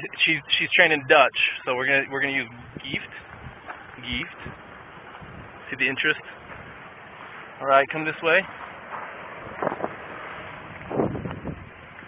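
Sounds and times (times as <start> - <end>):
wind buffeting microphone: 2.3 - 7.6, 8.4 - 12.0.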